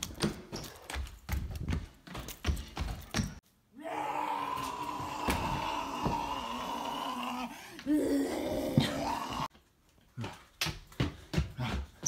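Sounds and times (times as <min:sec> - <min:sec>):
steady vocal moan: 0:03.8 - 0:09.5.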